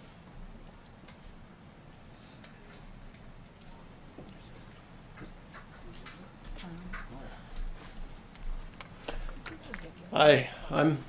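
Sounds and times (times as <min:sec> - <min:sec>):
faint clicks and taps: 0:00.2 - 0:01.7, 0:02.4 - 0:10.0.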